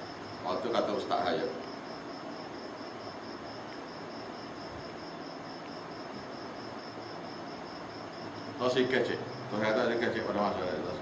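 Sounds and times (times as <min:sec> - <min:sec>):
crickets chirping: 0:00.0 - 0:11.0
faint hiss: 0:00.0 - 0:11.0.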